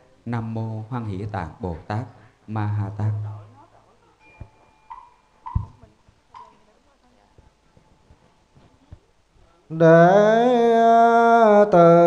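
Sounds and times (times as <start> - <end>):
hollow knocks with ringing tone: 4.3 - 5.8
dull low thumps: 5.5 - 6.2.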